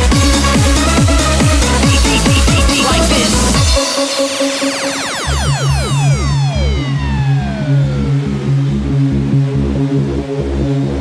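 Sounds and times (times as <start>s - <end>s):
steady kick drum: 0.0s - 3.9s
held bass note: 0.6s - 11.0s
falling synth sweep: 1.6s - 11.0s.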